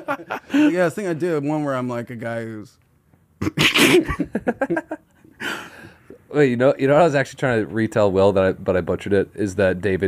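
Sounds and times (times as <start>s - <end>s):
person laughing: 3.4s - 5.0s.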